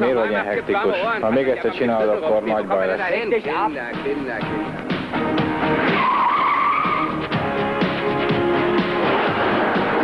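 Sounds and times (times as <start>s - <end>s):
car tyres squealing: 5.8s - 7.3s.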